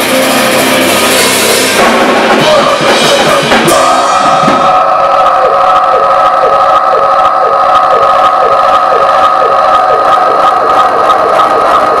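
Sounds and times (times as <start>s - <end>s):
drums: 0.0s - 12.0s
electric guitar feedback drone: 0.0s - 12.0s.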